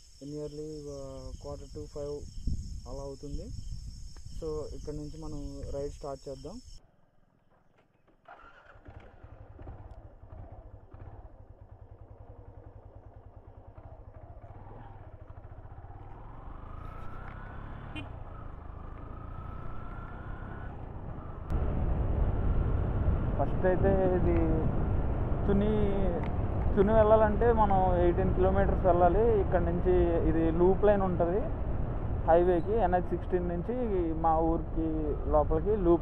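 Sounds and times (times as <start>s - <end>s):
motorcycle engine accelerating: 7.5s - 36.0s.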